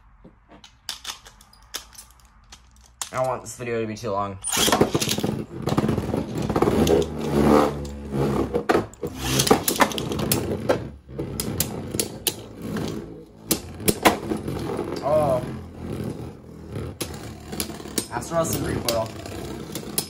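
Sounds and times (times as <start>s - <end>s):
spinning tops whirring: 4.5s - 20.0s.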